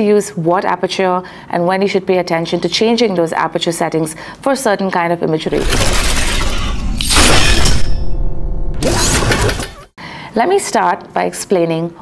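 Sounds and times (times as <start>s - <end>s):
glass-like shattering crash: 5.5s - 9.8s.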